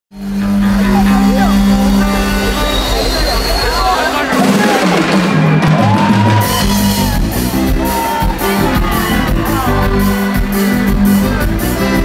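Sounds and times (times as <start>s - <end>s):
pulsing bass: 0.1s - 12.0s
live band music: 0.2s - 12.0s.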